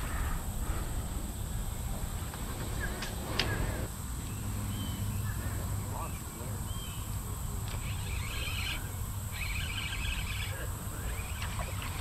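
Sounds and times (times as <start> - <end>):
insect buzzing: 0.0 - 12.0.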